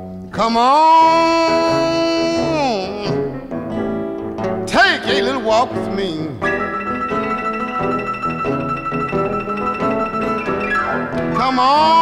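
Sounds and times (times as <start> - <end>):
electric blues guitar: 0.0 - 12.0.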